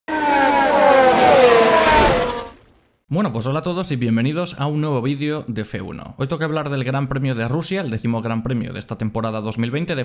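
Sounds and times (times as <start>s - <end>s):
race car engine passing: 0.1s - 2.7s.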